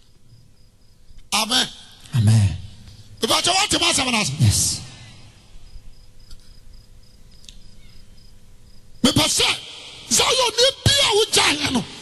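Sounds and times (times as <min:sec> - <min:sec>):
cricket chirping: 0:00.0 - 0:12.0
low steady hum: 0:00.0 - 0:12.0.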